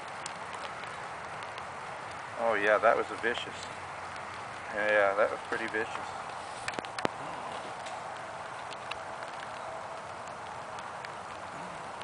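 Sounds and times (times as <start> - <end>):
faint clicks and ticks: 0.0 - 12.0
outdoor background hiss: 0.0 - 12.0.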